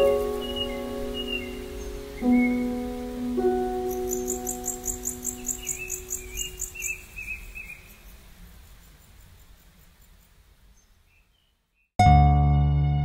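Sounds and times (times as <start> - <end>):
new-age music held notes: 0.0 - 6.8, 12.0 - 13.0
crickets chirping: 0.0 - 11.2.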